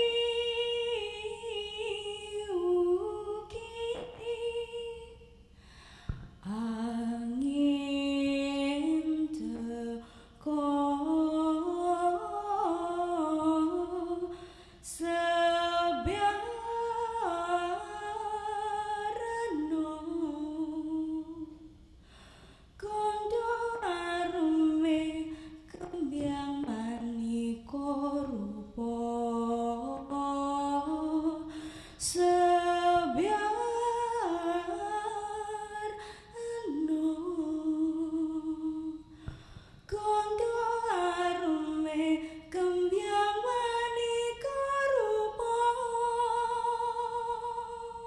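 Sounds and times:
woman singing unaccompanied: 0:00.0 - 0:05.4, 0:06.4 - 0:21.7, 0:22.8 - 0:39.3, 0:39.9 - 0:48.0.

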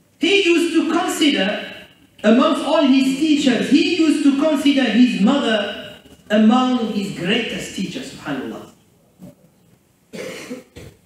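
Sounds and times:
throat clearing: 0:10.1 - 0:11.0.

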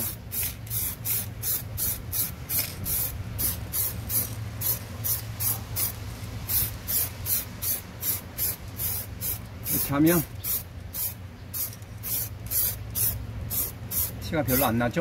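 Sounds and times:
aerosol spray can bursts: 0:00.0 - 0:14.7
low steady hum: 0:00.0 - 0:15.0.

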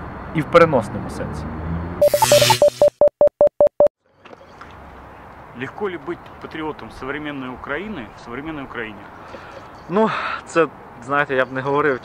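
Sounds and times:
short electronic beeps: 0:02.0 - 0:03.9.

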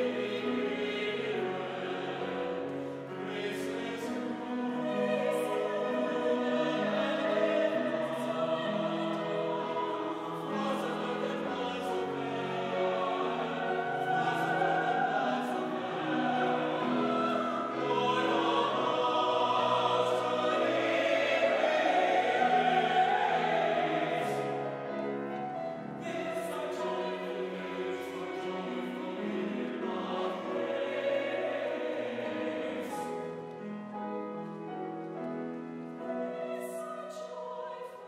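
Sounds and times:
church choir singing: 0:00.0 - 0:38.0.

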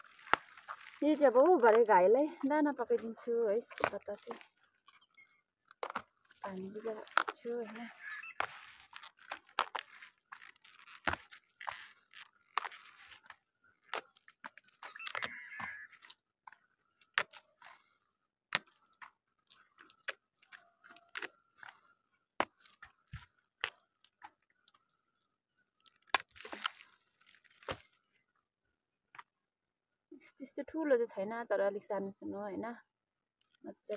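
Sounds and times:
cabbage leaves snapping and tearing: 0:00.0 - 0:28.4.

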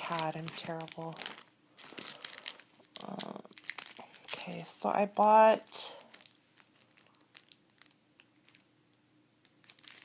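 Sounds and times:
plastic packaging crinkling: 0:00.0 - 0:08.7, 0:09.4 - 0:10.0.

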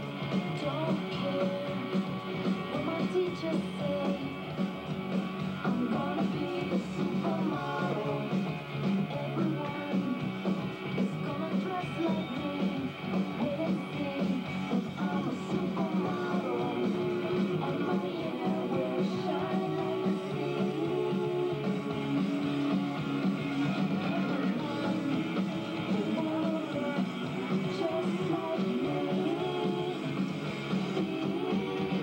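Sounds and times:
rock and roll song with guitar: 0:00.0 - 0:32.0.

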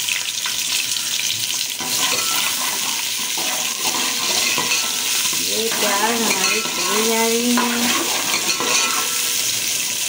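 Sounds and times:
onions sizzling in hot oil: 0:00.0 - 0:10.0.

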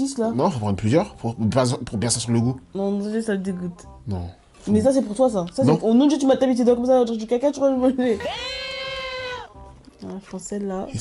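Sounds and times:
high-pitched bleat-like cry: 0:08.2 - 0:09.6.

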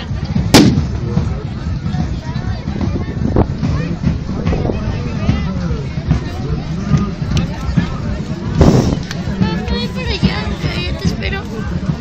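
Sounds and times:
crowd chatter: 0:00.0 - 0:12.0
loud bang with ring-out: 0:00.5 - 0:01.0.

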